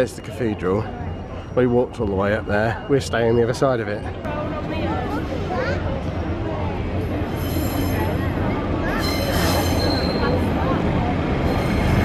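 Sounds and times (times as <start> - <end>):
train engine and rail rumble: 0.0 - 12.0
wheel squeal: 7.3 - 8.2, 8.9 - 10.5.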